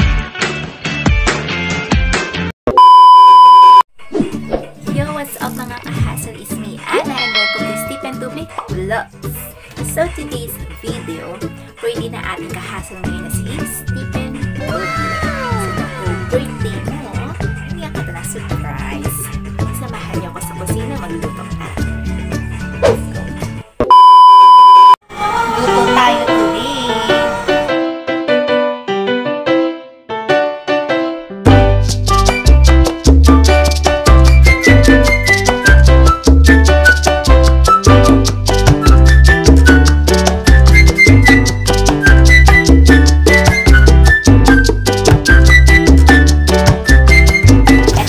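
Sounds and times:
music: 0.0s - 2.6s, 4.0s - 23.8s, 25.1s - 48.0s
electronic beep tone: 2.7s - 3.9s, 23.9s - 25.0s.

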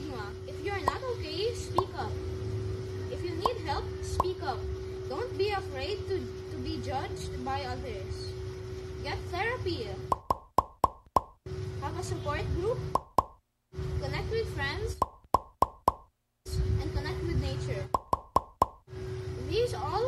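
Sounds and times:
boy speaking: 0.0s - 2.2s, 3.1s - 8.3s, 9.0s - 10.0s, 11.8s - 12.8s, 14.0s - 15.0s, 16.5s - 17.9s, 19.4s - 20.0s
steady hum: 0.0s - 20.0s
glitching audio clicks: 10.1s - 11.4s, 12.9s - 13.4s, 17.9s - 18.8s.

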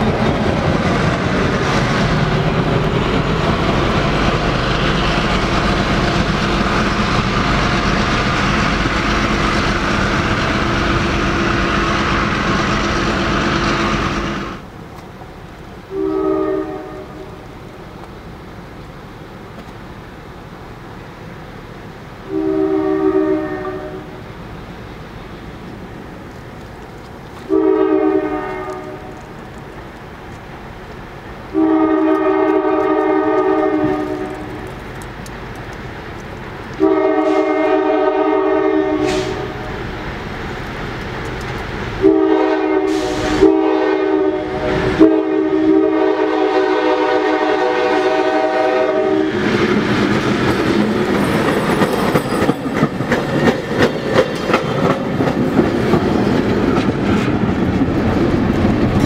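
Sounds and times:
train rumble: 0.0s - 59.0s
locomotive air horn: 15.9s - 17.4s, 22.2s - 24.2s, 27.5s - 29.2s, 31.5s - 34.6s, 36.8s - 39.8s, 42.0s - 49.4s
wheels clacking over rail joints: 49.4s - 59.0s.

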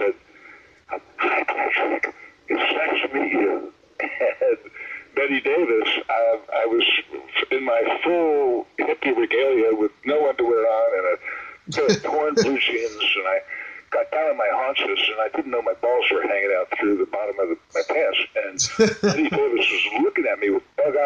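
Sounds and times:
person talking: 1.0s - 21.0s.

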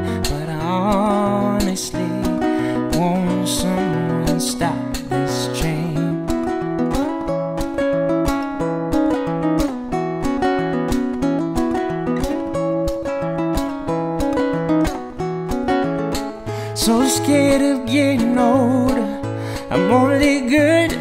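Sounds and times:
fingerstyle acoustic guitar: 0.0s - 21.0s.

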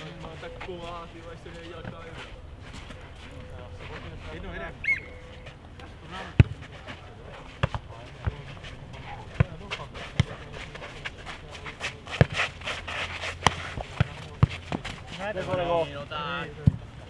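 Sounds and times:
ball thudding on clay court: 7.6s - 8.4s, 9.3s - 10.4s.

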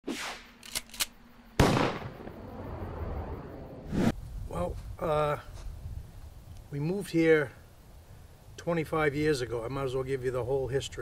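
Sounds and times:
short swish: 0.0s - 0.6s, 3.8s - 4.2s
sharp clicks: 0.6s - 1.2s
loud bang with low rumble: 1.6s - 3.6s.

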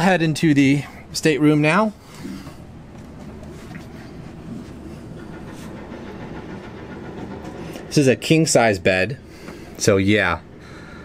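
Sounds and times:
low machinery rumble: 0.0s - 11.0s.

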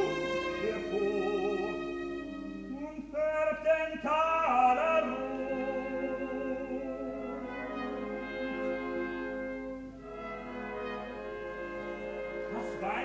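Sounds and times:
orchestra playing sustained chords: 0.0s - 3.0s, 5.0s - 13.0s
opera singer: 0.0s - 9.7s, 10.6s - 13.0s.

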